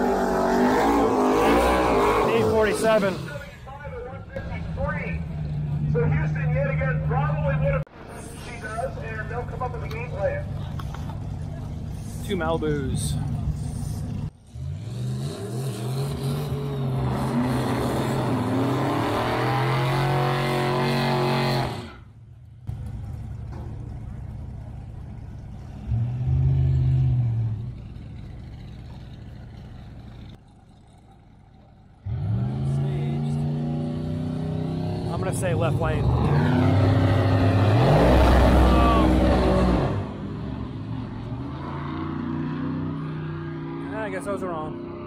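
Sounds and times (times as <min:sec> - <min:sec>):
race car engines revving: 0:00.0 - 0:45.0.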